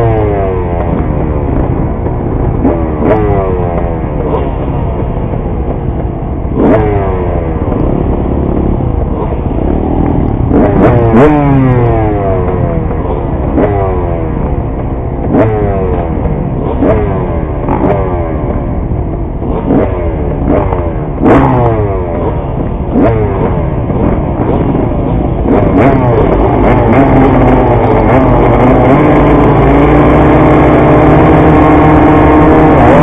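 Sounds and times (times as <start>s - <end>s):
vehicle engine under load: 0.0s - 33.0s.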